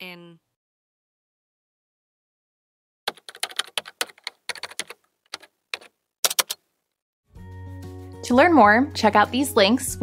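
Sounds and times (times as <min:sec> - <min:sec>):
keyboard typing clicks: 0:03.1 - 0:06.6.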